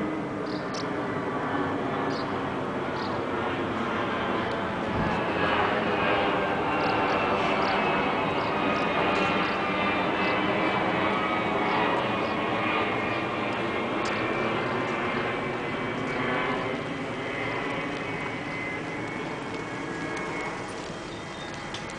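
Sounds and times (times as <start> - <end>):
jet airliner passing overhead: 0.0 - 21.9.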